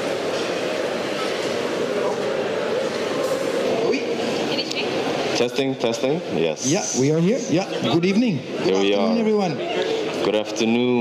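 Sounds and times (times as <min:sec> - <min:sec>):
many indistinct voices chattering: 0:00.0 - 0:11.0.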